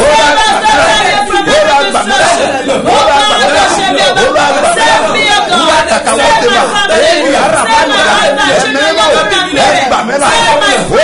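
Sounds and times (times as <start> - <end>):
man praying aloud: 0.0 - 11.0
woman praying aloud: 0.0 - 11.0.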